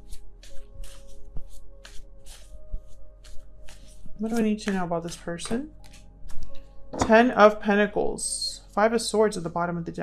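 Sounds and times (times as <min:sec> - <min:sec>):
cards being shuffled: 0:00.0 - 0:06.7
soft background music: 0:00.0 - 0:10.0.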